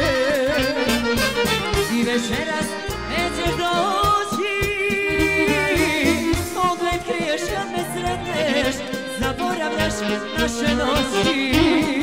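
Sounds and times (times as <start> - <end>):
person singing: 0.0 - 1.0, 1.7 - 12.0
band playing folk music: 0.0 - 12.0
bass beat: 11.4 - 12.0.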